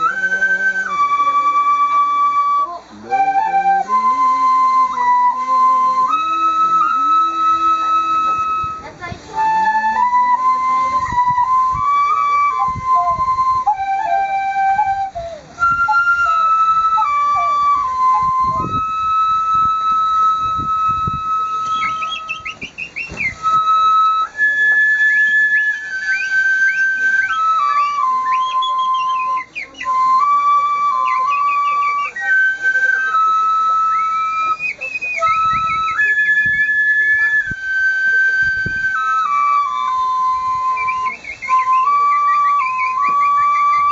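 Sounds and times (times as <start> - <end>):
bamboo flutes playing melody: 0.0 - 43.9.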